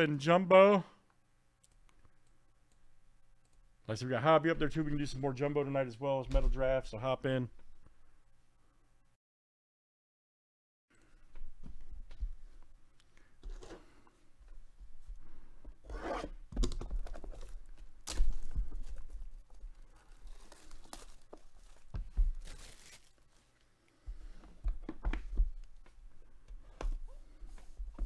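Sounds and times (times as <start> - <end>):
plastic wrap crinkling and tearing: 17.3 - 23.6.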